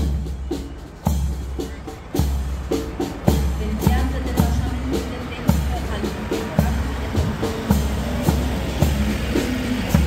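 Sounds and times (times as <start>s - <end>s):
bass drum beat: 0.0s - 10.0s
march music: 0.0s - 10.0s.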